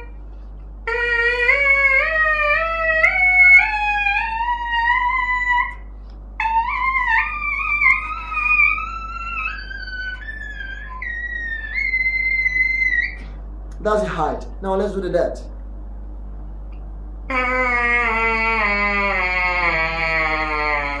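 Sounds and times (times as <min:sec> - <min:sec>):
trumpet mouthpiece buzzing notes: 0:00.0 - 0:14.5, 0:17.2 - 0:21.0.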